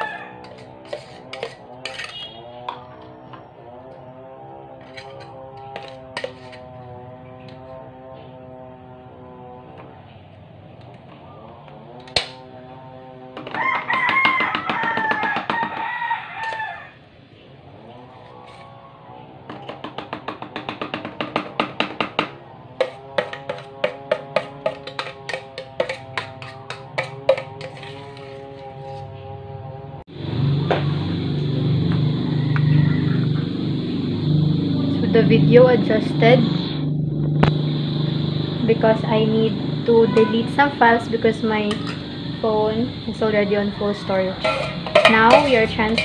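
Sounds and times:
rooster crowing: 0.0 - 1.2, 13.4 - 21.4, 31.8 - 34.9, 43.8 - 46.0
vehicle engine running: 22.5 - 46.0.

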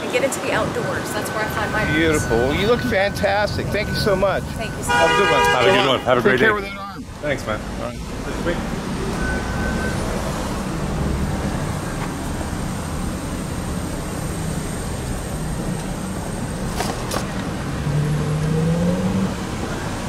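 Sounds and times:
car engines and tyre noise: 0.0 - 20.0
vehicle engine pulling away: 8.4 - 20.0.

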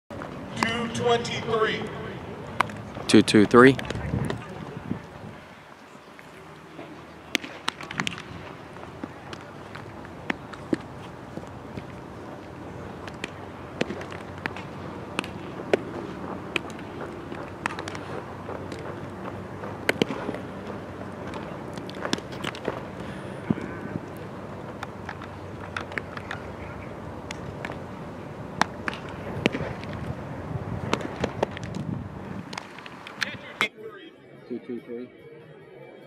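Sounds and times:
faint distant voices: 0.2 - 31.2
baseballs smacking into gloves: 2.5 - 4.6, 6.8 - 27.9, 28.5 - 30.2, 30.8 - 33.7.

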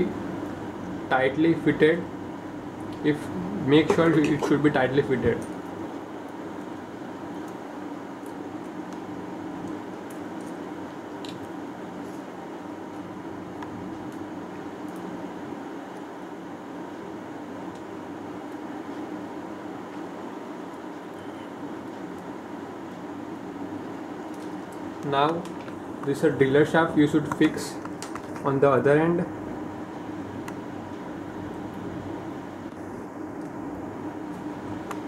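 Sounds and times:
low background hum: 0.0 - 35.0.

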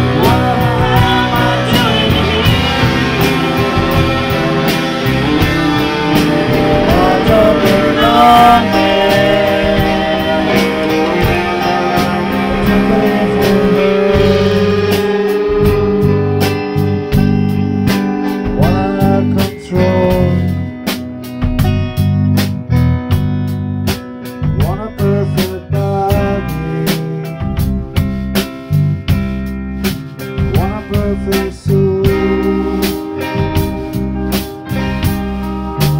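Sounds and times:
person singing: 0.0 - 20.7, 24.6 - 27.5, 30.5 - 33.4
drum strikes: 0.0 - 31.4
electric guitar with bent notes: 0.0 - 35.9
live rock band playing: 0.0 - 35.9.

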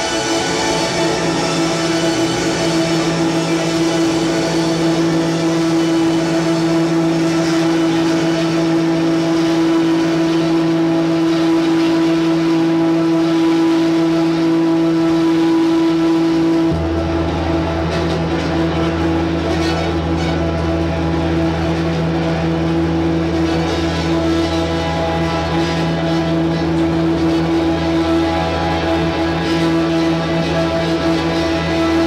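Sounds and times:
ambient drone of held notes: 0.0 - 32.0
deep low note: 0.0 - 32.0.

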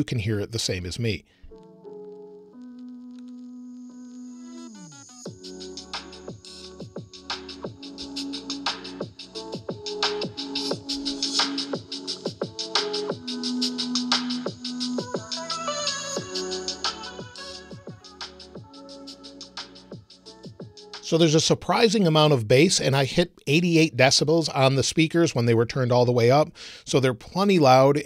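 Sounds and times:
electronic music from laptop speakers: 1.5 - 21.2
drum beat with heavy bass: 5.3 - 21.1.

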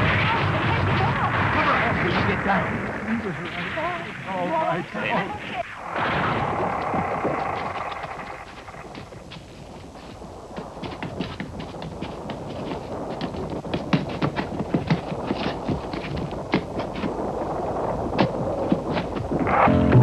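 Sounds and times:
structure collapsing crash: 0.0 - 20.0.

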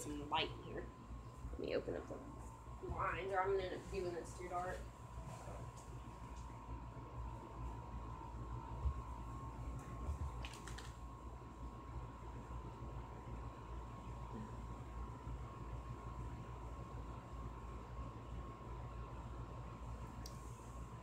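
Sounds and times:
electrical hum: 0.0 - 21.0.

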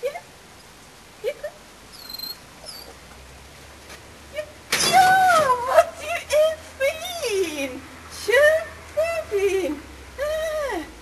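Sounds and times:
high thin squeaks: 1.9 - 2.9.

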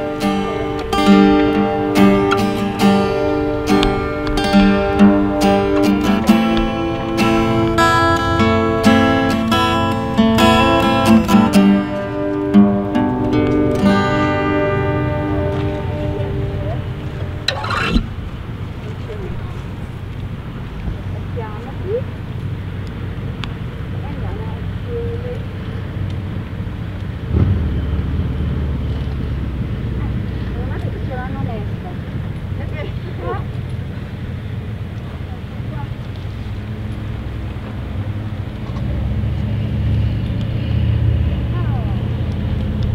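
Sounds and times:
low outdoor background rumble: 0.0 - 42.9.

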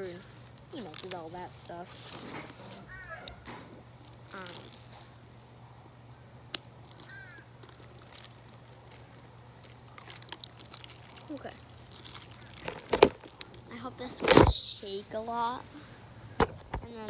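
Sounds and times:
faint crow caw: 2.8 - 3.7, 7.0 - 7.7.

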